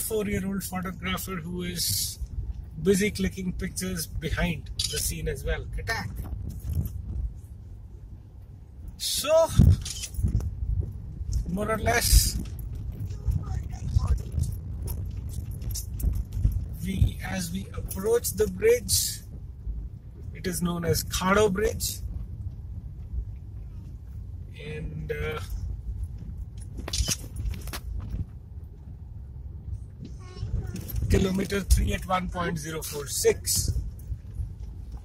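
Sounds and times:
rattling and clinking in cabin: 0.0 - 7.4, 8.4 - 24.4, 25.2 - 35.0
tyres rumbling on dirt road: 0.0 - 35.0
knocks and rattles in car: 9.6 - 20.4.

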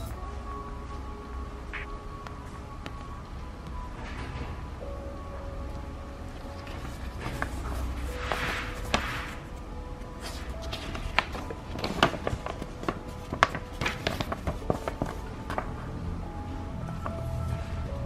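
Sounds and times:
quiet background music: 0.0 - 18.0
paper crinkling: 6.4 - 9.6, 10.2 - 15.9.

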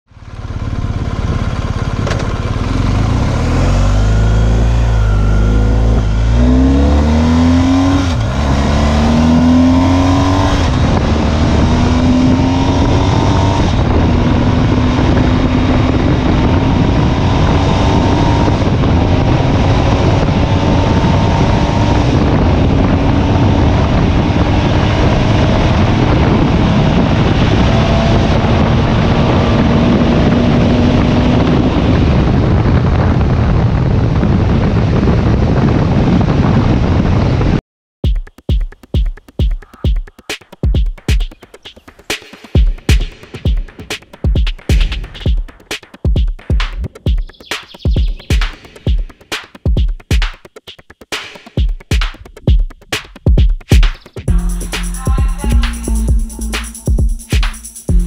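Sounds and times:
motorcycle engine accelerating: 0.1 - 37.5, 51.5 - 58.0
wind rush on microphone: 2.3 - 37.6.

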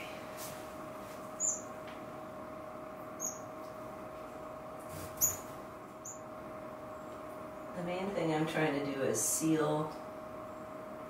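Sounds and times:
steady low hum: 0.0 - 11.0
finches chirping: 1.4 - 1.8, 3.2 - 3.5, 5.2 - 7.6.

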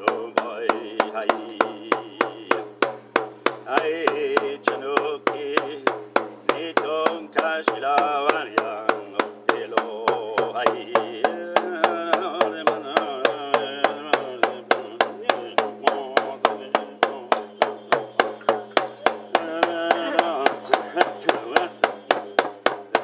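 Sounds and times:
person chanting: 0.0 - 2.8, 3.6 - 23.0
frame drum beat: 0.0 - 23.0.

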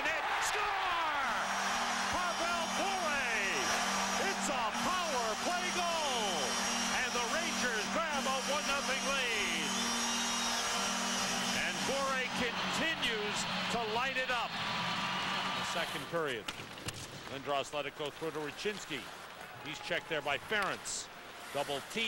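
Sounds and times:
crowd cheering and whooping: 0.0 - 16.1
arena goal horn blaring: 1.1 - 14.1.

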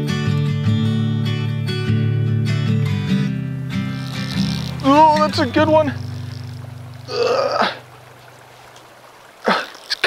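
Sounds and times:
flowing river water: 2.7 - 10.0
person speaking: 4.7 - 6.0.

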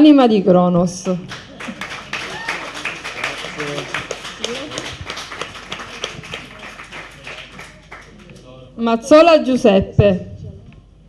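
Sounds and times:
audience clapping: 1.0 - 8.5.

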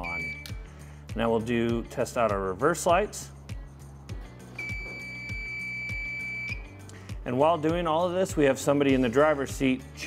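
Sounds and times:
high-pitched electronic beep: 0.0 - 0.5, 4.6 - 6.6
background music with beat: 0.0 - 10.0.

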